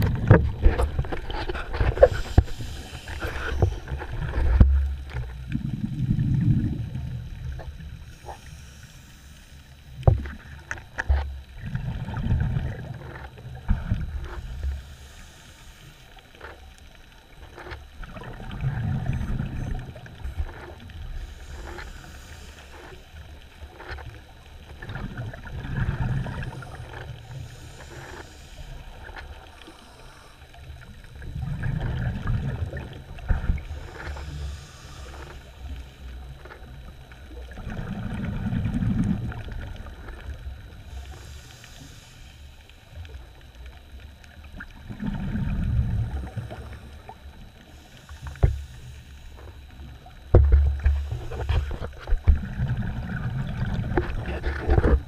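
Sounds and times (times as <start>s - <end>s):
underwater rumbles: 0.0s - 55.0s
faint hiss: 2.0s - 4.0s, 8.0s - 10.6s, 14.4s - 16.2s, 33.5s - 36.3s, 40.6s - 43.5s.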